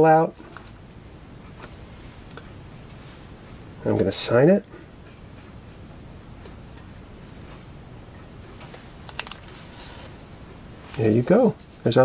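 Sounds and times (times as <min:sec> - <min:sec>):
paper sliding rustle: 0:08.6 - 0:10.2.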